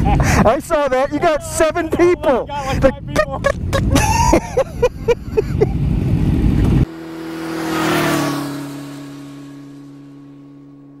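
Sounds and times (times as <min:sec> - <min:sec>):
rushing whoosh: 0:05.7 - 0:10.4
low held tone: 0:06.7 - 0:11.0.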